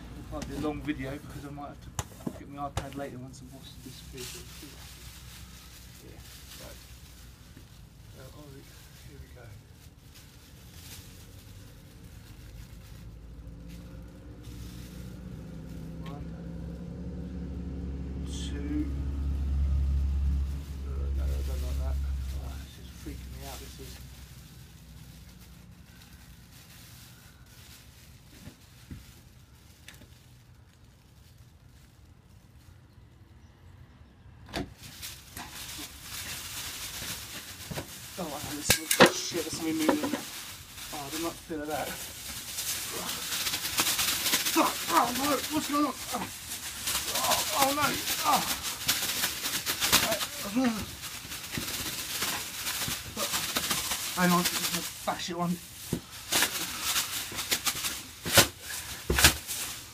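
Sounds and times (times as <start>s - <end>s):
plastic bag rustling: 0.0s - 17.2s, 19.2s - 33.0s, 34.7s - 59.9s.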